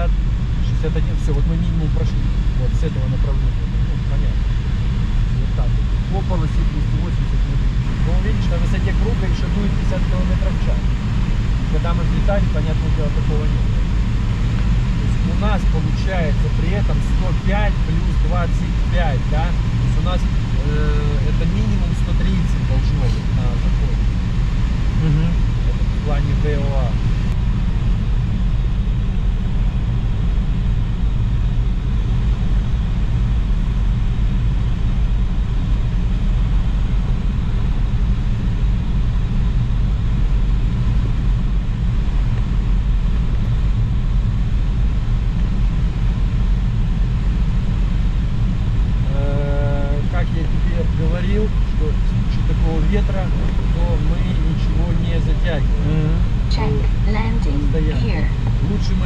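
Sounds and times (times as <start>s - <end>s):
glider cockpit drone: 0.0s - 59.0s
voice-like sounds: 25.0s - 25.4s, 53.0s - 59.0s.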